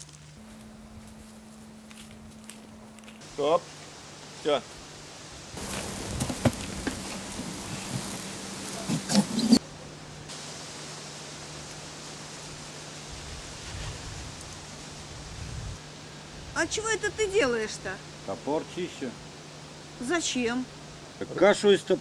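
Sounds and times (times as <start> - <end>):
rustling: 5.6 - 9.6.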